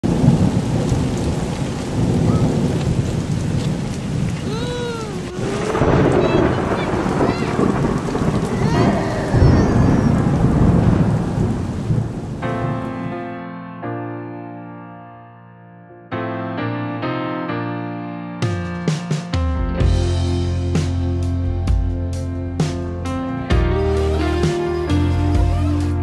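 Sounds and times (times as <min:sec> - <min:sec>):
heavy rain pouring: 0:00.0 - 0:13.1, 0:23.5 - 0:26.0
thunder rumbling: 0:00.0 - 0:13.2.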